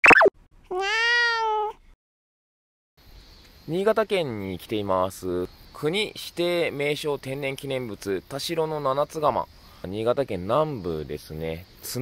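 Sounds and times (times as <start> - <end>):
cat meowing: 0.7 - 1.8.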